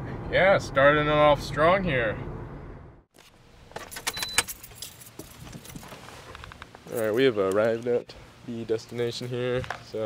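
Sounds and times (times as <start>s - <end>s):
keys jangling: 3.9s - 5.8s.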